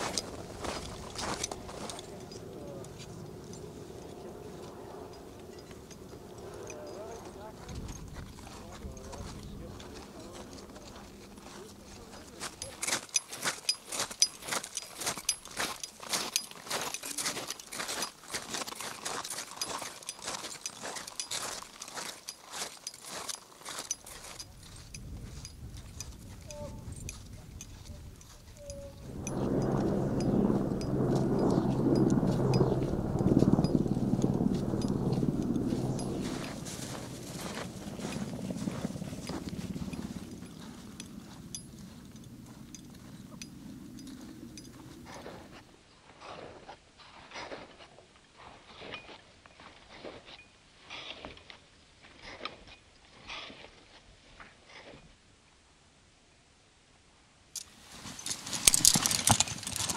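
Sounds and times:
low steady rumble with hum: 0:24.9 - 0:45.2.

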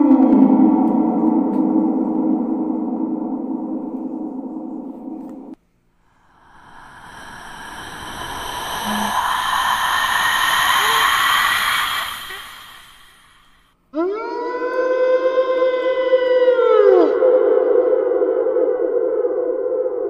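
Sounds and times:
hissing whoosh: 0:06.4 - 0:13.7.

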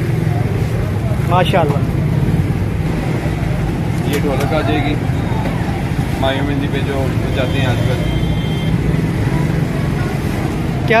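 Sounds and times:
road traffic engine rumble: 0:00.0 - 0:11.0.

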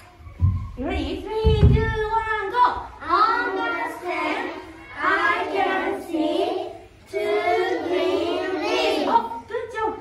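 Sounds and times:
children singing: 0:03.0 - 0:09.2.

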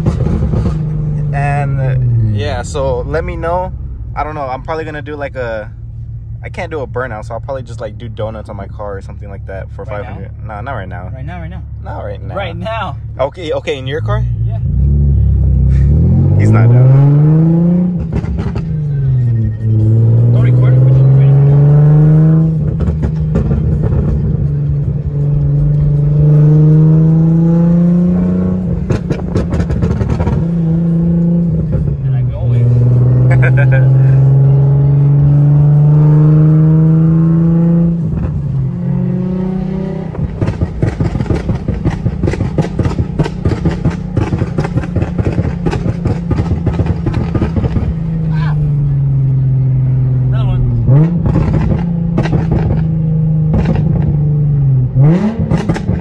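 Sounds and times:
car engine accelerating through gears: 0:13.2 - 0:56.0
exhaust crackles and pops: 0:28.6 - 0:30.5, 0:40.1 - 0:48.2, 0:51.0 - 0:54.3, 0:55.1 - 0:56.0.

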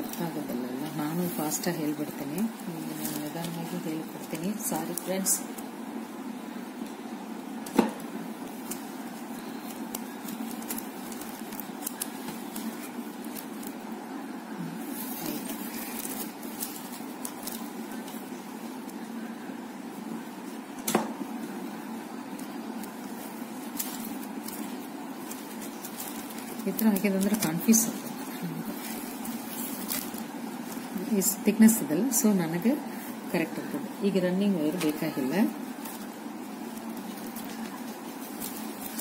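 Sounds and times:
low background hum: 0:00.0 - 0:39.0.

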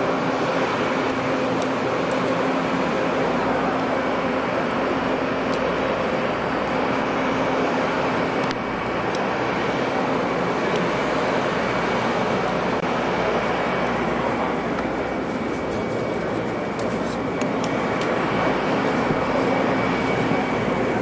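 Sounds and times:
crane engine humming: 0:00.0 - 0:21.0.

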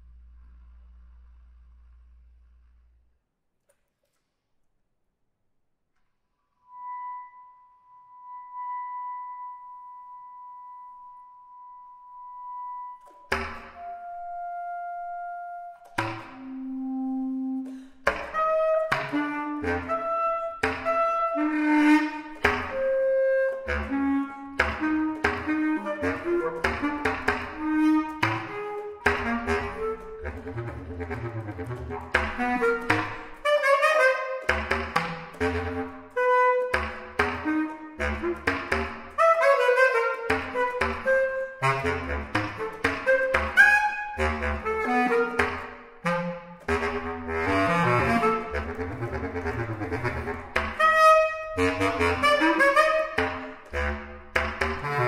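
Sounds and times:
solo bass clarinet: 0:06.6 - 0:55.0.

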